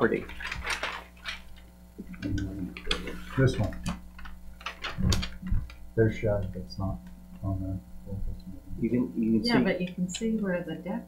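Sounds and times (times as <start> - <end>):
paper sheets rustling: 0.2 - 2.3, 2.9 - 5.7
low murmured voice: 2.0 - 3.8, 6.0 - 9.6.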